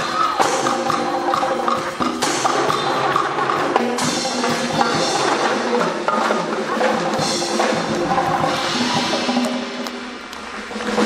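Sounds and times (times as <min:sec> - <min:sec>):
conga drums: 0:00.0 - 0:11.0
steady clicking beat: 0:00.0 - 0:11.0
wind and brass chords: 0:00.6 - 0:11.0.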